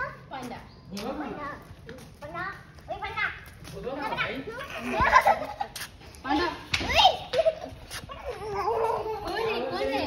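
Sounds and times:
young children babbling: 7.9 - 9.9.

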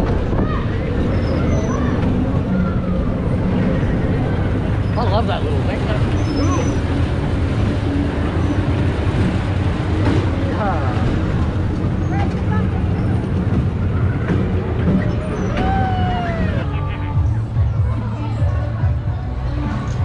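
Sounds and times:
crowd voices and calls: 0.0 - 20.0
fairground ride machinery rumbling: 0.0 - 20.0.

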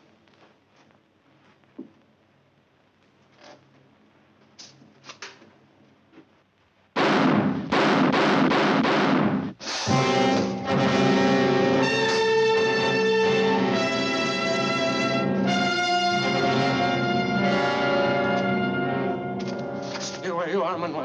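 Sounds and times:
orchestral heavy hits: 7.0 - 20.8
held brass chords: 9.9 - 21.0.

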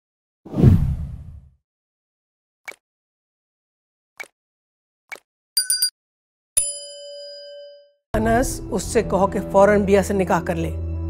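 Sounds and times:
notification bell ding: 5.6 - 5.9, 6.6 - 8.0.

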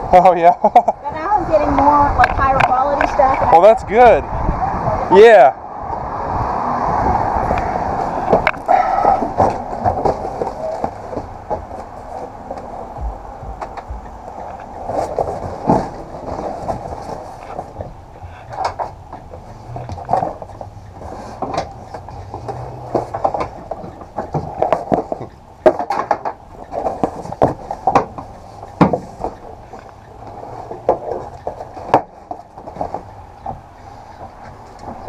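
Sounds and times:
cardboard boxes knocking and scraping: 8.3 - 14.2, 14.8 - 18.0, 18.6 - 29.4.

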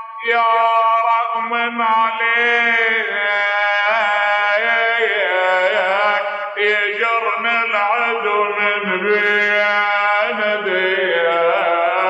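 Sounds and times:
man chanting mournful lament: 0.0 - 12.0.

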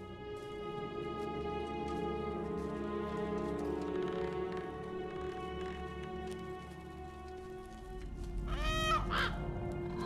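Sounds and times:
crow cawing: 8.5 - 9.5.

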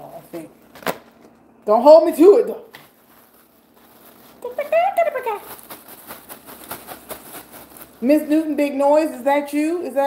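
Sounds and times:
plastic bag crinkling: 2.7 - 8.6
woman's voice: 4.4 - 5.5, 8.0 - 10.0.

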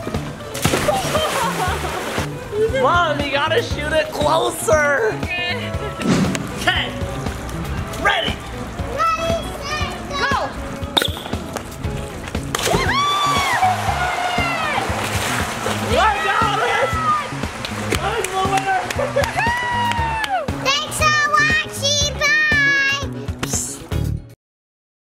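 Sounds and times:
water splash: 0.0 - 2.4, 12.3 - 19.7.

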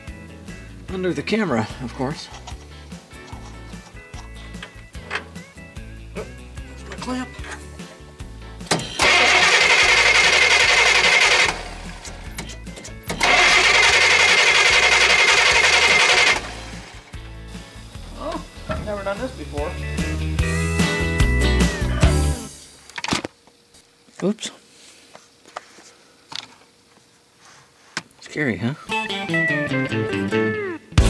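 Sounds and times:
starter motor cranking: 8.6 - 17.1.

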